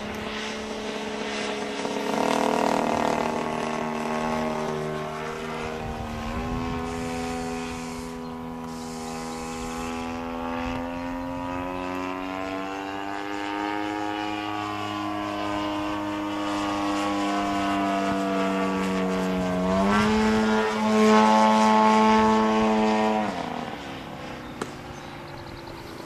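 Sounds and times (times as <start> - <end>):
model plane engine buzzing: 0.0 - 26.0.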